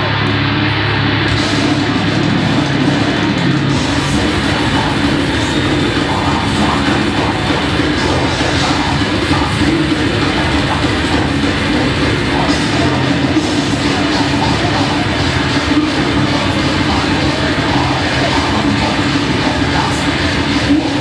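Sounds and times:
distorted guitars: 0.0s - 21.0s
drums: 0.0s - 21.0s.

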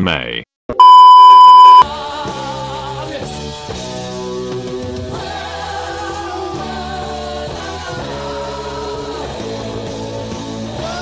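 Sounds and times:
test-tone beep: 0.8s - 1.8s.

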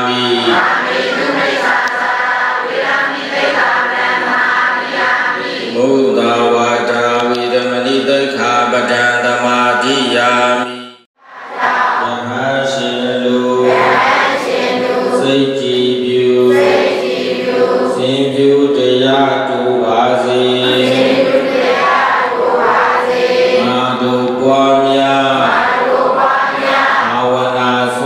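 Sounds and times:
congregation chanting in unison: 0.0s - 28.0s.

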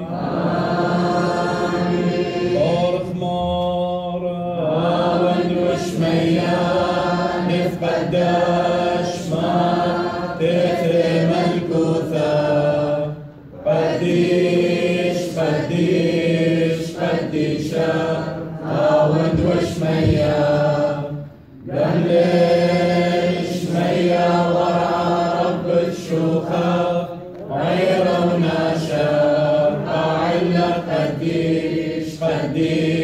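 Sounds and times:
group chanting a hymn in unison: 0.0s - 33.0s.

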